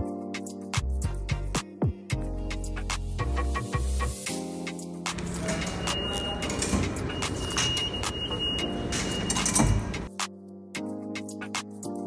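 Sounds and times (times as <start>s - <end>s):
plucked background music: 0.0s - 12.0s.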